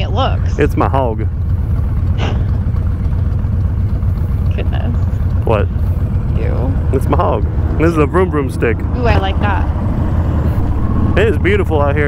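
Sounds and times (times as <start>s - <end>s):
second motorcycle idling: 0.0s - 9.8s
motorcycle engine idling: 0.0s - 9.9s.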